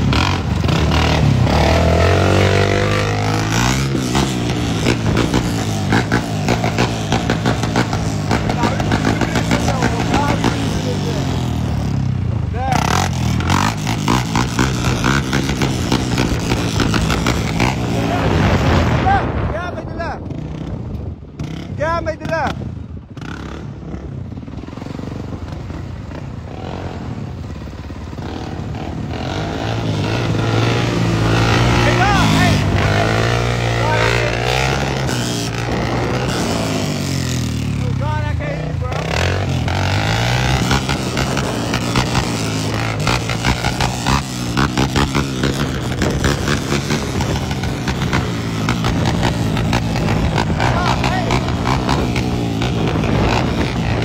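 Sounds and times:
quad engine revving: 0.0s - 54.0s.

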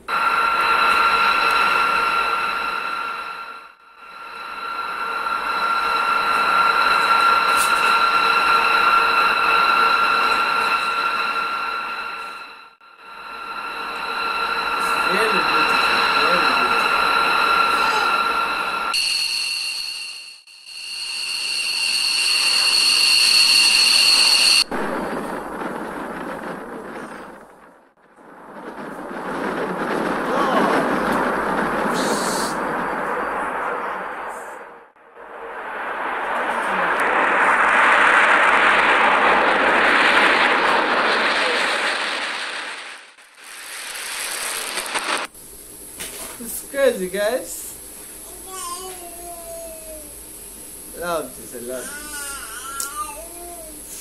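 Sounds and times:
jet engine roar: 0.0s - 48.3s
jet engine turbine whine: 0.0s - 54.0s.

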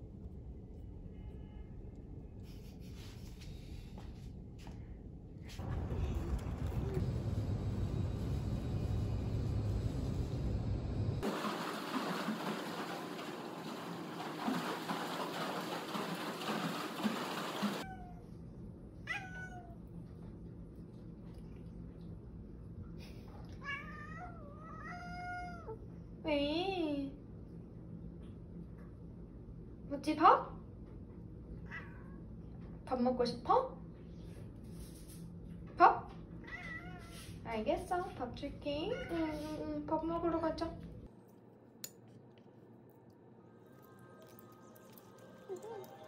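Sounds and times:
water splashing in pool: 11.2s - 17.8s
cat meowing: 19.1s - 19.8s, 36.4s - 37.1s.

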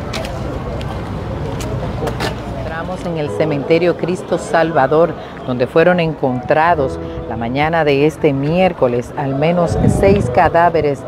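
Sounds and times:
steady low rumble: 9.6s - 11.0s.

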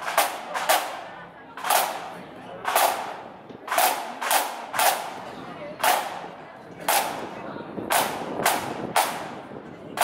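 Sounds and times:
snare drums struck together: 7.9s - 9.3s.

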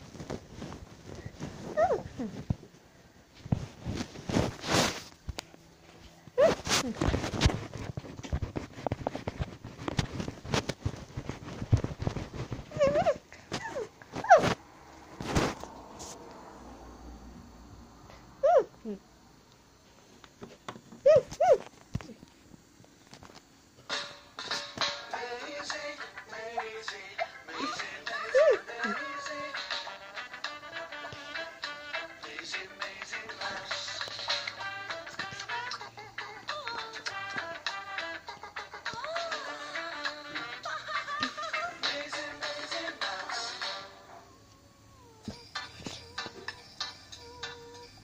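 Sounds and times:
squeaky voice-like call: 1.8s - 2.1s, 12.7s - 14.4s, 18.4s - 19.0s, 21.0s - 21.6s.

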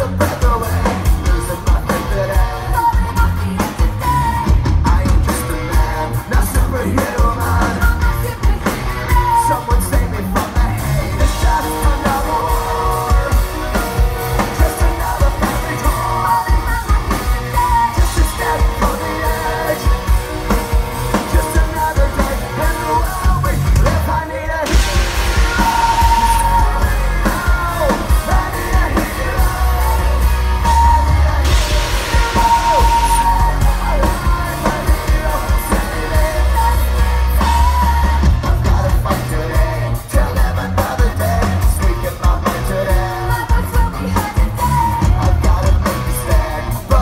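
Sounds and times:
crowd yelling: 0.0s - 47.0s
live hard rock band: 0.0s - 47.0s
loud hiss of gas jets: 24.7s - 30.3s.

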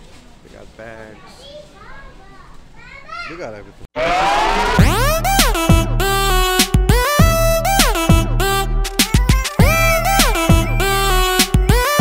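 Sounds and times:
busy shop hubbub: 0.0s - 4.4s.

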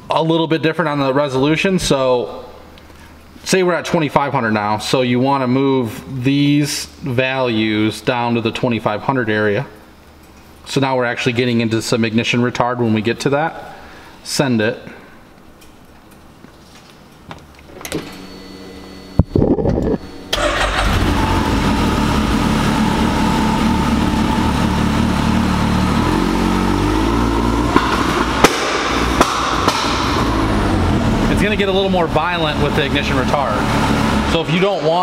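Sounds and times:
engine running loud: 20.4s - 34.5s
engine pops: 27.7s - 30.6s.

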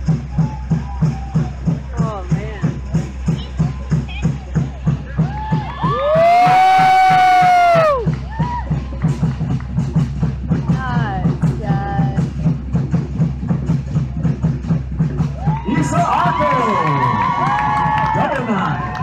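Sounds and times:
fast steady drumming: 0.0s - 19.0s.

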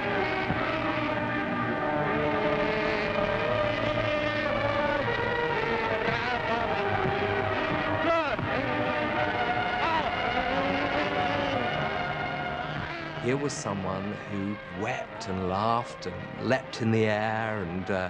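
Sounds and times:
orchestral music with sustained chords: 0.0s - 18.0s
sliding pitches: 0.0s - 18.0s.

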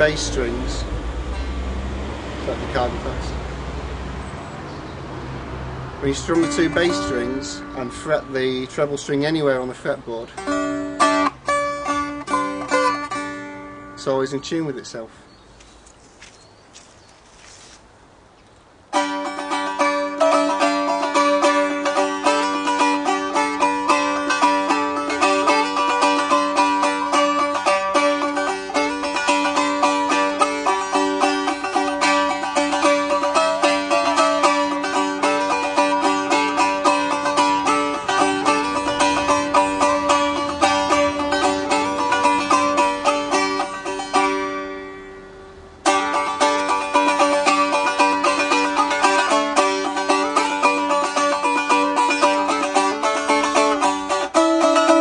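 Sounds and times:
strummed stick dulcimer: 6.0s - 14.9s, 18.9s - 55.0s.

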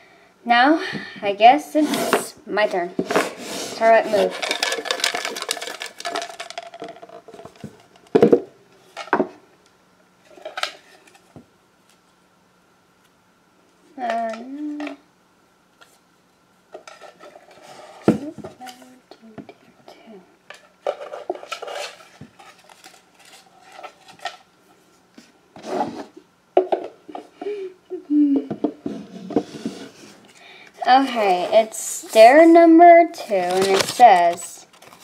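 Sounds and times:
small hard objects clattering: 4.1s - 8.4s.

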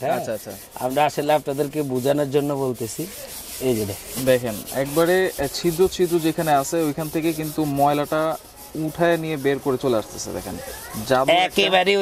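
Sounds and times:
brush scrubbing floor tile: 0.0s - 12.0s
man talking: 0.0s - 12.0s.

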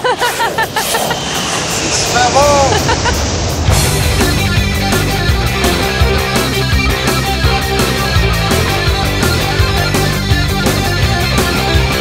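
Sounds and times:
wind: 0.0s - 5.5s.

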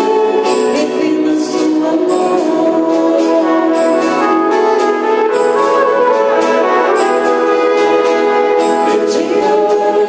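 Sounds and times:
flute: 0.0s - 10.0s
saxophone: 0.0s - 10.0s
trumpet: 0.0s - 10.0s
violin: 0.0s - 10.0s.

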